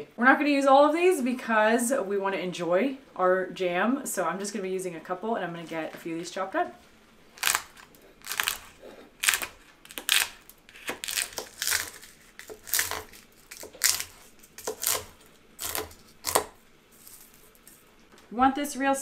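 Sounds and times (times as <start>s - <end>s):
knife chopping dried peppers: 7.4s - 17.2s.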